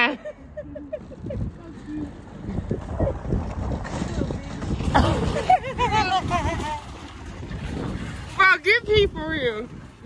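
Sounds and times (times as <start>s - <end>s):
shopping cart rolling on asphalt: 0.0s - 10.0s
wind buffeting microphone: 0.5s - 10.0s.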